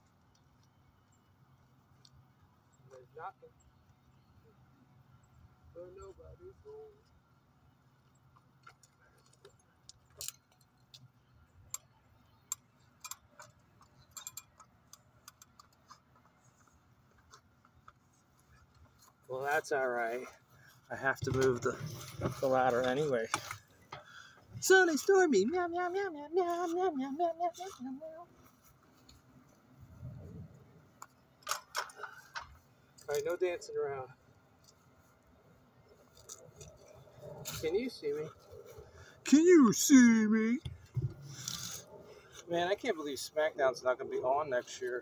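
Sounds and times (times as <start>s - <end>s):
faint low rumble: 29.8s - 31.0s.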